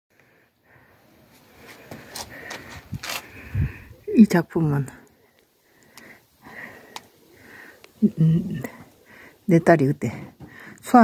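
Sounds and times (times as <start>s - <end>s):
person breathing into microphone: 0.8s - 4.0s.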